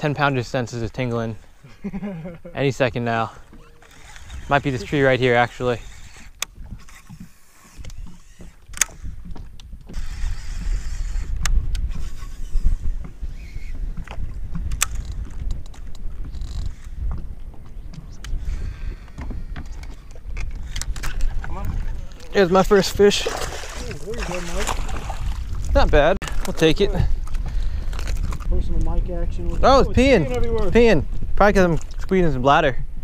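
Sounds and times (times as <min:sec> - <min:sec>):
wind buffeting microphone: 0:00.0 - 0:33.0
sharp clicks: 0:05.6 - 0:10.3, 0:14.7 - 0:17.0, 0:17.9 - 0:21.3.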